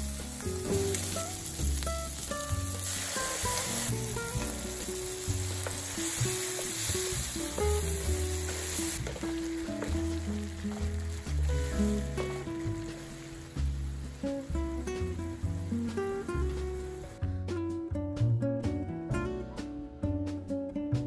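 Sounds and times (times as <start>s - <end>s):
food sizzling in a frying pan: 0.0s - 17.2s
soft background music: 0.0s - 21.0s
wooden spatula stirring: 4.7s - 11.6s.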